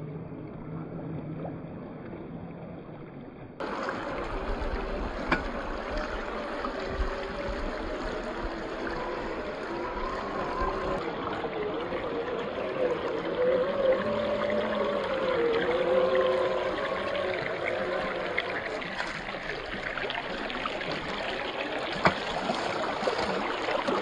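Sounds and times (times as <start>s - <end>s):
water rushing and splashing: 0.0s - 24.0s
electric motor whine: 3.6s - 19.8s.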